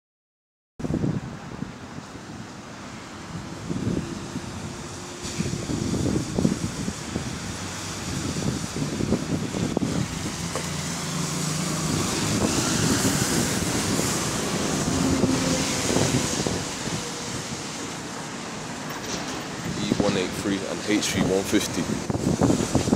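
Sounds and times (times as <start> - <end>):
street traffic noise: 0.8 - 22.9
bus driving past on wet road: 1.0 - 22.9.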